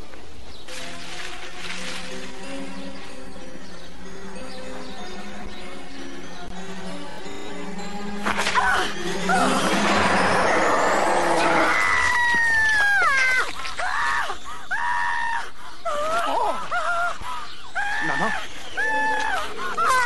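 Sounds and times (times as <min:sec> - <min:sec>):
noisy film score: 0:00.7 - 0:20.0.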